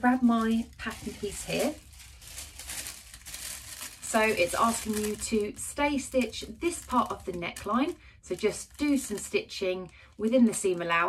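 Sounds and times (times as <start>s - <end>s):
paper crinkling and rustling: 0.0s - 11.0s.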